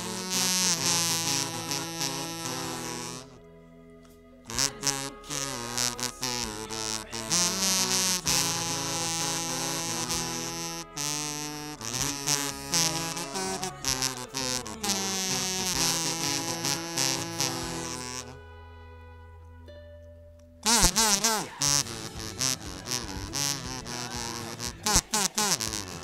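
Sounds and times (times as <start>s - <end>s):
kazoo buzzing a melody: 0.0s - 19.7s, 20.6s - 26.0s
instrumental backing track: 0.0s - 26.0s.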